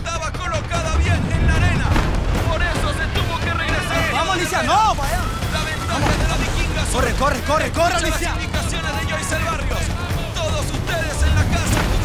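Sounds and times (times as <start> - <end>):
background music: 0.0 - 12.0
excited shouting voices: 2.6 - 11.8.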